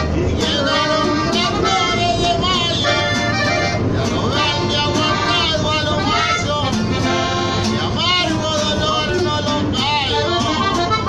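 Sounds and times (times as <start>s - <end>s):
accordion: 0.0s - 11.0s
man singing: 0.0s - 11.0s
strummed guitar: 0.0s - 11.0s.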